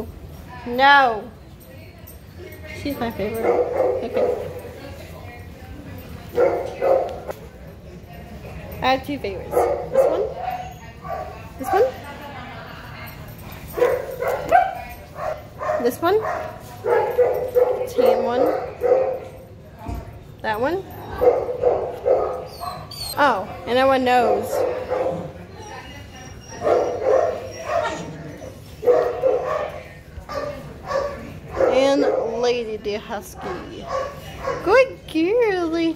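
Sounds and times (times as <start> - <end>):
dogs barking and yipping: 3.2 - 4.9, 6.3 - 7.3, 9.4 - 12.1, 13.6 - 19.5, 20.9 - 23.4, 24.0 - 32.6, 33.5 - 35.0
dogs whining and yipping: 22.4 - 23.3, 25.5 - 29.2.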